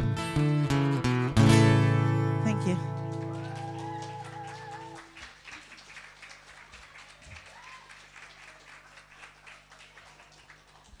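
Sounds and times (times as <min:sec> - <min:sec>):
audience clapping: 0:02.4 - 0:11.0.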